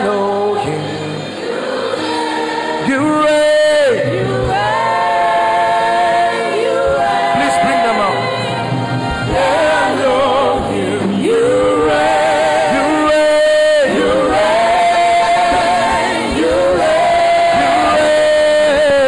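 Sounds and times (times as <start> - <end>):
choir singing gospel song: 0.0 - 19.0.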